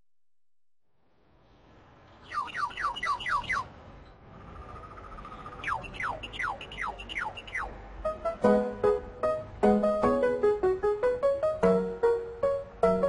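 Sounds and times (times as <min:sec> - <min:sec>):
low steady hiss: 0:00.9 - 0:04.5
bird-like chirps: 0:02.1 - 0:07.8
whistle-like tone: 0:05.6 - 0:07.7.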